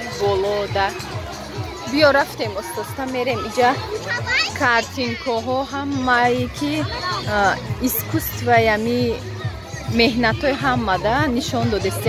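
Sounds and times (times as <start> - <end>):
children calling and chattering: 0.0 - 12.0
music playing: 0.0 - 12.0.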